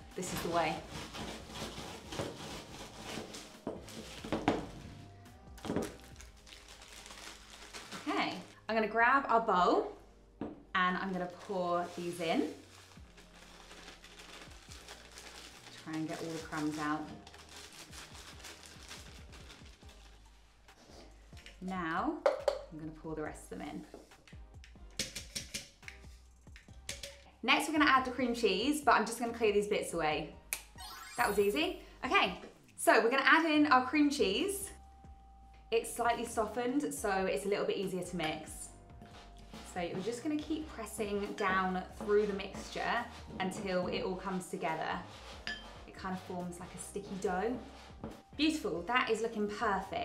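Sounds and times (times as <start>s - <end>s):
background music: 0.0s - 50.0s.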